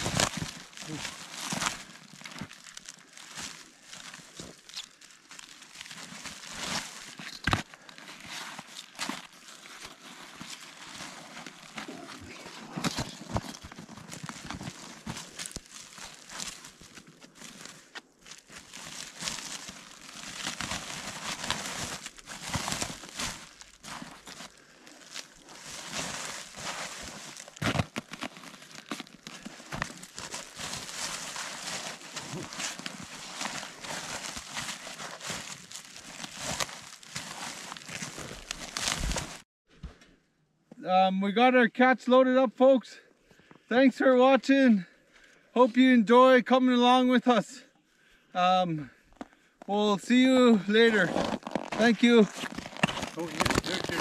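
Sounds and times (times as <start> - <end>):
plastic sack rustling and crackling: 0.0 - 39.5, 50.6 - 54.0.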